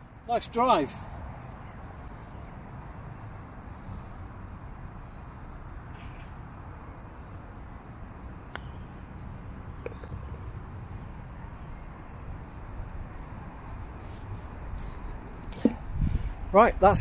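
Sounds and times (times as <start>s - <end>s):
wind buffeting microphone: 9.4s - 17.0s
ball dropping into cup: 9.8s - 10.4s
putter striking golf ball: 9.8s - 10.4s.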